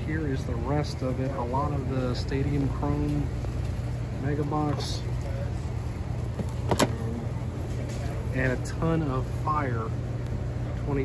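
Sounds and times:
store ambience hum: 0.0 - 11.0.

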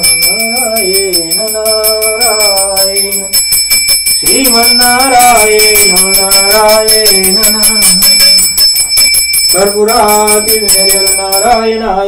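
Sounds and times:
hand bell ringing rapidly: 0.0 - 11.9
person chanting: 4.2 - 8.9, 9.5 - 12.0.

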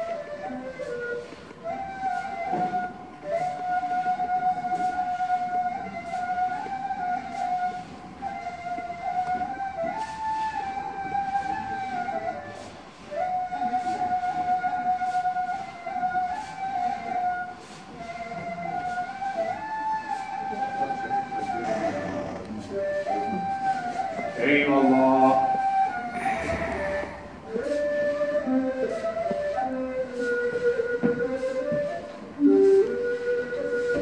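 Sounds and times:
reed flute slow melody: 0.0 - 34.0
soft percussion beat: 25.8 - 32.1.

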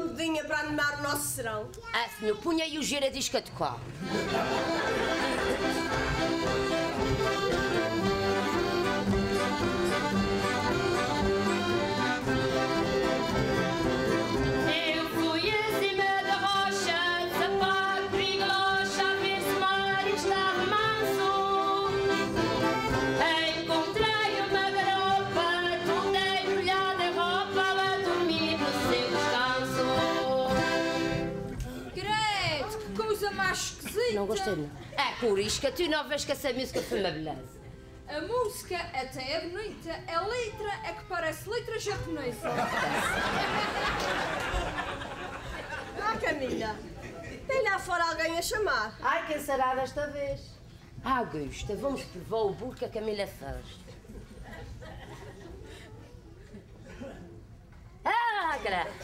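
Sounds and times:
instrumental backing music: 4.0 - 31.9
women singing: 14.6 - 22.2, 23.2 - 31.0.

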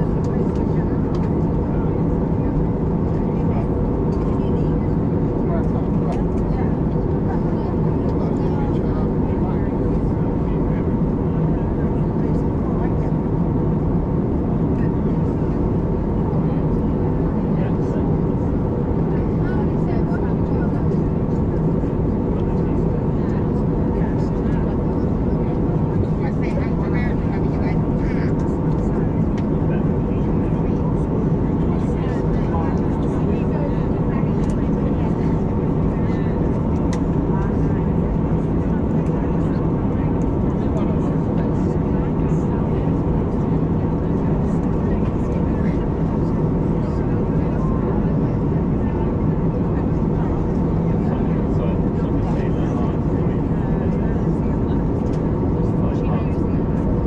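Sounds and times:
jet engines droning: 0.0 - 57.0
low steady hum: 0.0 - 57.0.

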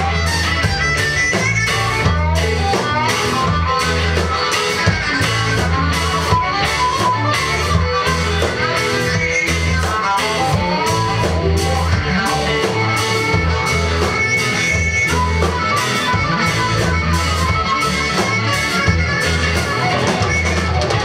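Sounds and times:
drum kit: 0.0 - 21.0
electric guitars: 0.0 - 21.0.

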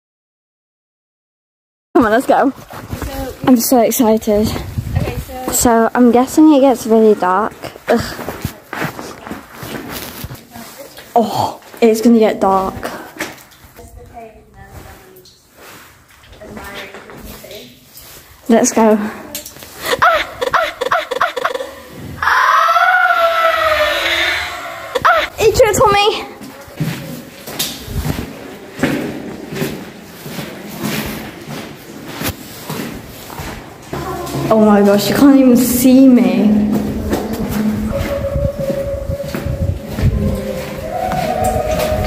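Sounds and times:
footsteps crunching on stony ground: 2.1 - 5.7, 6.9 - 11.8, 26.3 - 35.5, 36.5 - 42.0.

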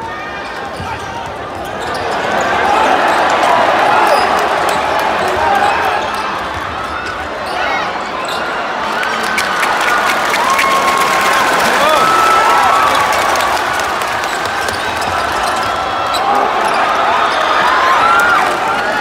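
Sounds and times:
murmur of crowd chatter: 0.0 - 19.0
sneakers squeaking on court: 0.7 - 2.5, 5.6 - 11.6, 14.2 - 17.4.

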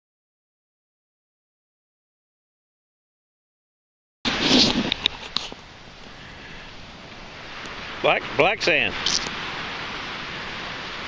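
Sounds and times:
wind: 4.2 - 11.0
surf at the beach: 4.3 - 11.0.

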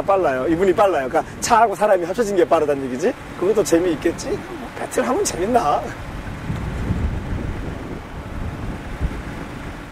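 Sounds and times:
wind buffeting microphone: 0.0 - 9.9.

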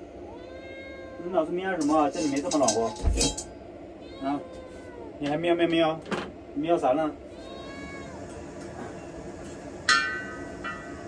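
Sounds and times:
cat meowing: 0.2 - 1.5, 4.0 - 5.2, 7.3 - 8.4.

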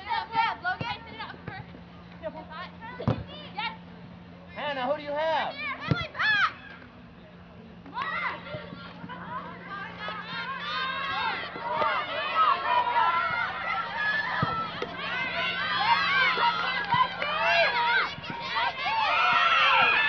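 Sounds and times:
steady low hum: 0.0 - 20.0
children shouting: 8.0 - 20.0.

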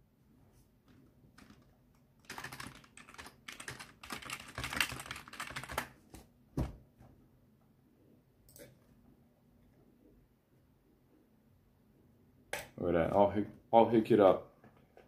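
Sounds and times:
rapid typing on keyboard: 1.3 - 6.0.

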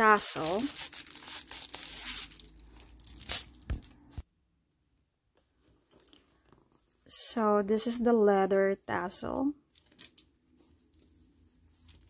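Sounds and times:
wrapper crinkling and rustling: 0.0 - 4.2, 9.7 - 10.3.

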